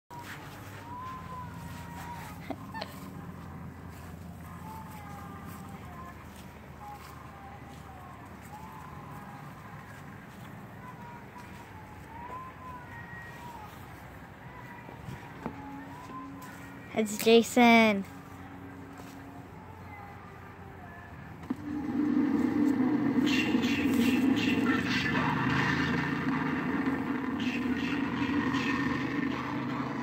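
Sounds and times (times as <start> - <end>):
high voice singing: 0.1 - 30.0
low background hum: 0.1 - 30.0.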